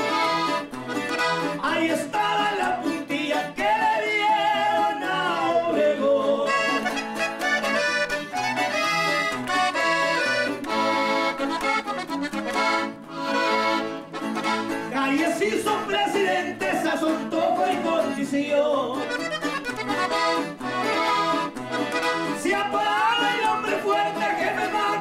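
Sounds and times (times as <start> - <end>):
button accordion: 0.0 - 18.1, 18.9 - 25.0
men singing: 1.6 - 7.0, 14.9 - 19.1, 22.4 - 25.0
bass strumming beat: 6.5 - 18.2, 19.0 - 25.0.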